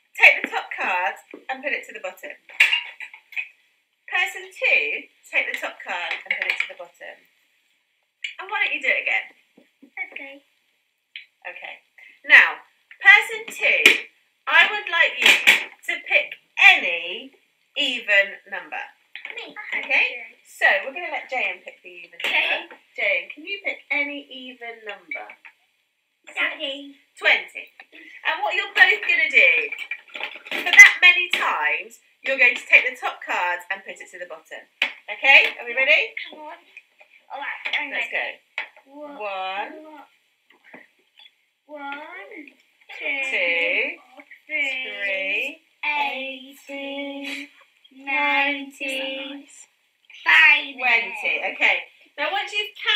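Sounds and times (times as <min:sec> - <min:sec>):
people talking in high voices: 0:17.8 - 0:25.4, 0:41.7 - 0:52.9.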